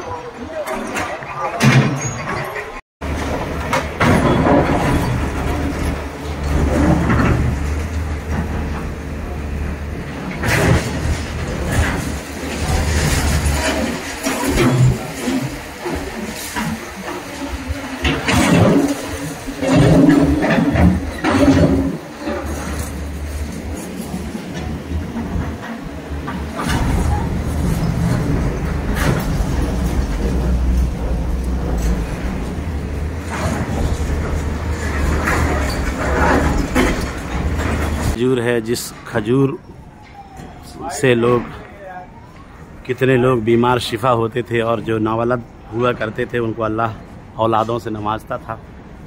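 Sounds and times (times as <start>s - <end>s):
excavator diesel engine rumble: 0.0s - 49.0s
demolition knocks and clatter: 0.1s - 39.4s.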